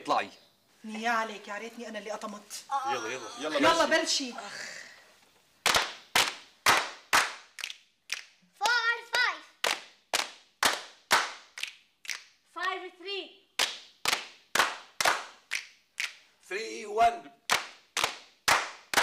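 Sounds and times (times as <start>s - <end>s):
person calling out: 2.7s - 4.0s
people clapping in rhythm: 5.6s - 12.8s, 13.5s - 16.4s, 17.4s - 19.0s.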